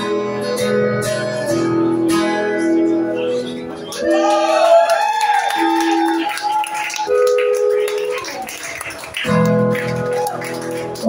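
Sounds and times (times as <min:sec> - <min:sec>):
acoustic guitar chords: 0:00.0 - 0:04.0.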